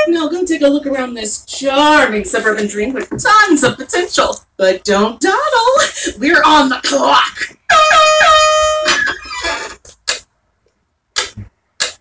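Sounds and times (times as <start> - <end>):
air horn blast: 7.7 - 9.1.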